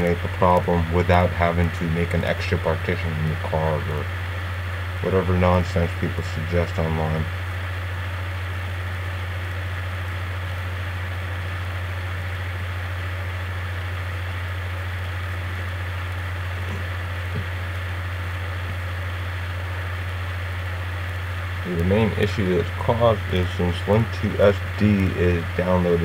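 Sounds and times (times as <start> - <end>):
constant hiss: 0.0 - 26.0
steady low hum: 0.0 - 26.0.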